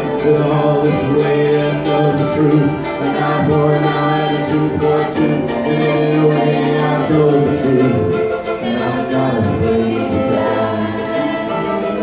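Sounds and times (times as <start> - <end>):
acoustic string accompaniment: 0.0 - 12.0
voices singing together: 0.0 - 12.0.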